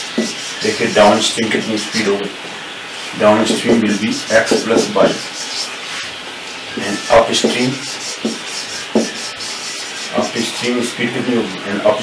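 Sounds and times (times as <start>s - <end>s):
marker squeaking on whiteboard: 0.0s - 2.0s, 3.5s - 10.7s.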